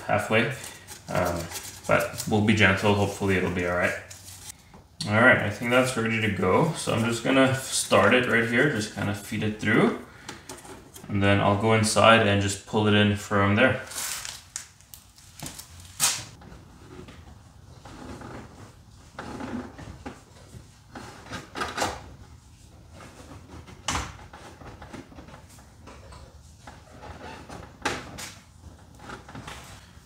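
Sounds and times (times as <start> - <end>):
cable scraping and rustling: 0.0 - 4.6, 13.8 - 21.6.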